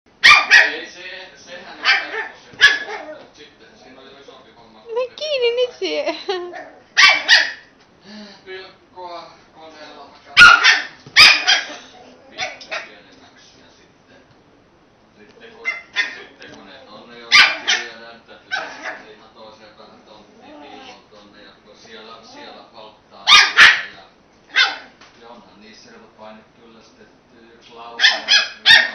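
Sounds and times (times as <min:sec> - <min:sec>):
puppy barking: 0:00.2 - 0:00.9, 0:01.8 - 0:03.3, 0:06.5 - 0:07.7, 0:10.4 - 0:12.9, 0:15.6 - 0:16.3, 0:17.3 - 0:19.1, 0:23.2 - 0:25.0, 0:28.0 - 0:28.9.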